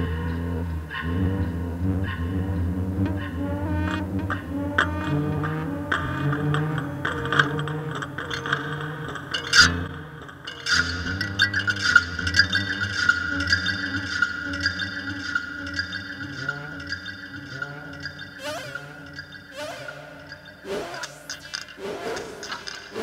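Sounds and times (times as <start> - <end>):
rising synth swoop: 0.0 - 8.0, 11.5 - 23.0
low synth drone: 0.0 - 23.0
clicks and taps on glass and strings: 3.9 - 21.8.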